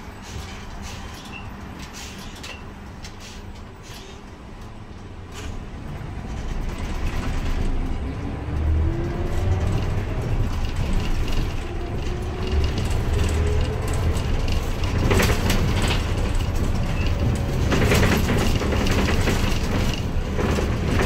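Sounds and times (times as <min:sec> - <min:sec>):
bus engine running: 0:00.0 - 0:21.0.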